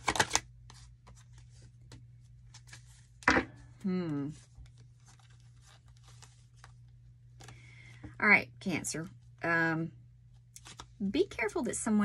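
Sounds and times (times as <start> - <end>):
cards being shuffled: 0.0 - 7.7, 10.6 - 11.0.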